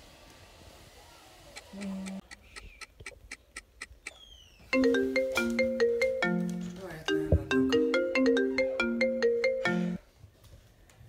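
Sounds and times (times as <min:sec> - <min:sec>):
phone ringtone melody: 0:04.8 - 0:10.0.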